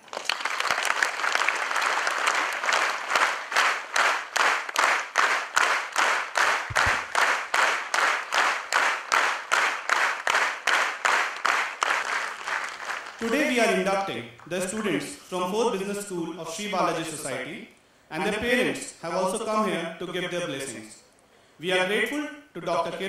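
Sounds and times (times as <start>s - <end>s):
audience applauding: 0.0s - 14.9s
rhythmic clapping in unison: 0.0s - 15.1s.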